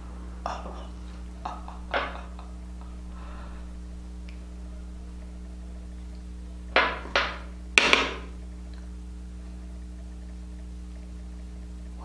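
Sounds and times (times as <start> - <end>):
low electrical hum: 0.0 - 12.0
knocks on tabletop: 6.8 - 8.3.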